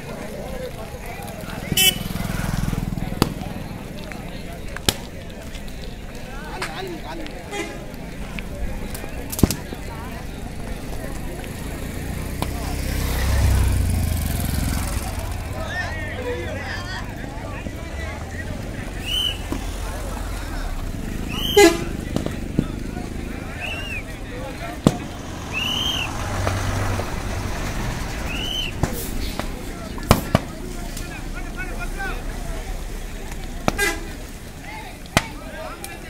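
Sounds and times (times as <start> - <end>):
people talking and laughing: 0.0 - 36.0
fireworks whistles: 19.0 - 19.6, 21.3 - 21.8, 25.1 - 26.9, 28.2 - 29.5
fireworks bangs: 23.7 - 31.9.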